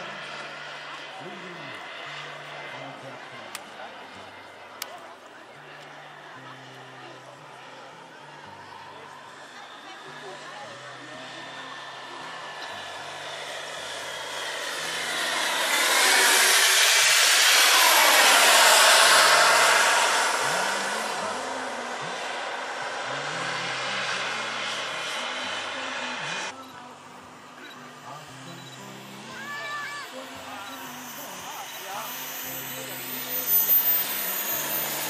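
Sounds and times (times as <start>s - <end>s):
model jet engines flying past: 0.0s - 35.0s.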